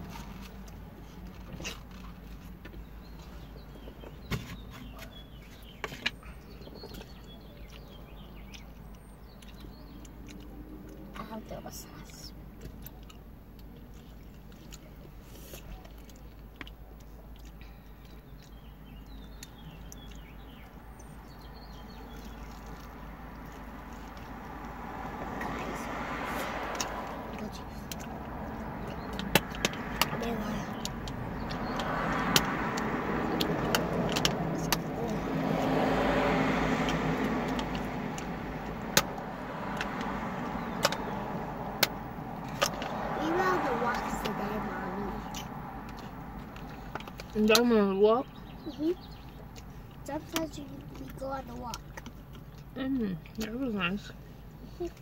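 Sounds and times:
road traffic hum: 0:00.0 - 0:55.0.

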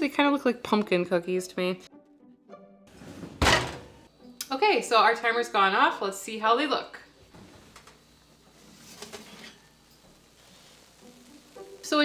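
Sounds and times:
metal baking sheet scraping: 0:02.9 - 0:04.0, 0:08.6 - 0:09.8.

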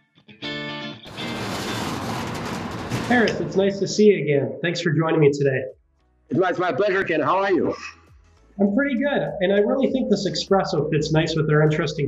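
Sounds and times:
steady rattling: 0:01.1 - 0:04.0.

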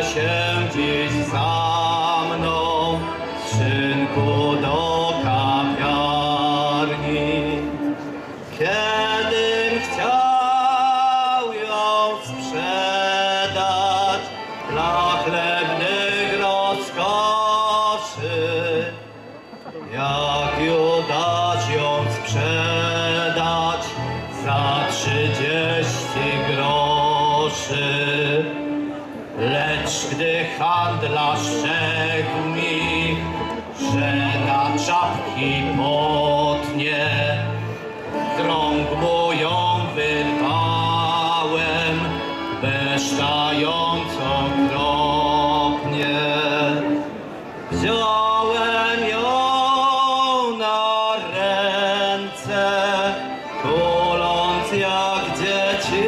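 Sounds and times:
instrumental backing with bass: 0:00.0 - 0:49.8, 0:51.3 - 0:56.0
man singing into a microphone: 0:00.0 - 0:56.0
violins: 0:00.0 - 0:56.0.

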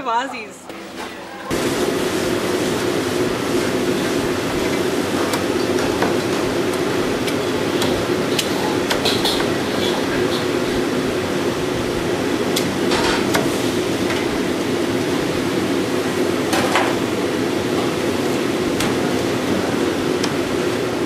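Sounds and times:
kitchen hum: 0:00.0 - 0:21.0.

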